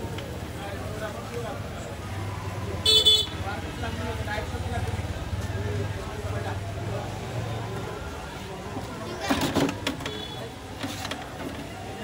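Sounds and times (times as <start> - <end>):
street chatter: 0.0 - 12.0
vehicle horn tooting: 2.8 - 3.4, 10.1 - 10.5.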